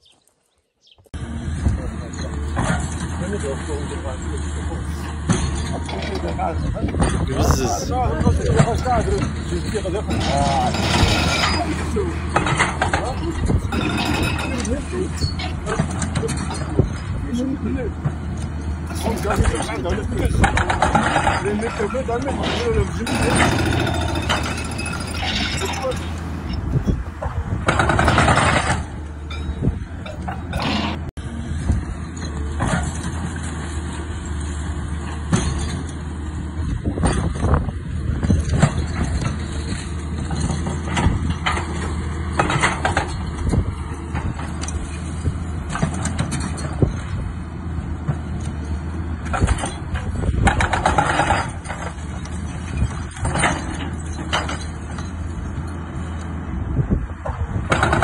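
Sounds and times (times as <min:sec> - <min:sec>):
excavator diesel engine running: 0:01.2 - 0:58.0
brick and concrete crashing: 0:05.2 - 0:17.5, 0:18.9 - 0:27.0.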